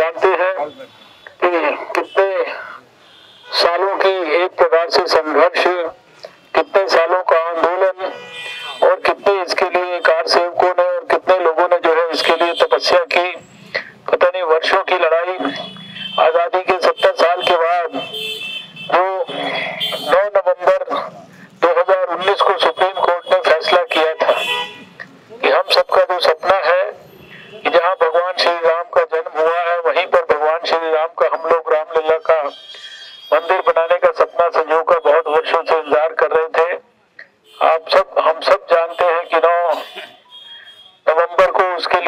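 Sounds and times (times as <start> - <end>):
man speaking into a microphone: 0.0 - 42.0.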